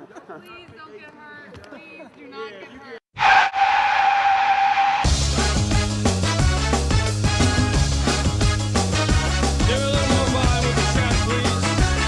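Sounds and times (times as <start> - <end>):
car tyres squealing: 3.2 - 5.1
band music with bass and beat: 5.1 - 12.0.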